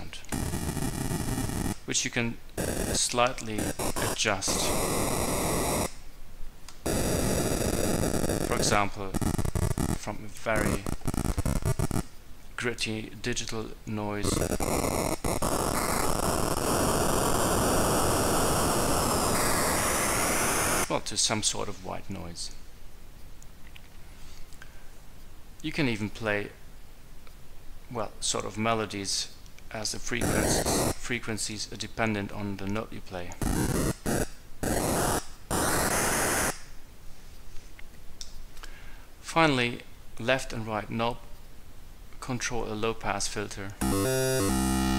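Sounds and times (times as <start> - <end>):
synthesizer noise: 0.3 - 1.9, 2.6 - 6.0, 6.8 - 12.1, 14.2 - 20.9, 30.2 - 31.0, 33.4 - 36.6, 43.8 - 44.9.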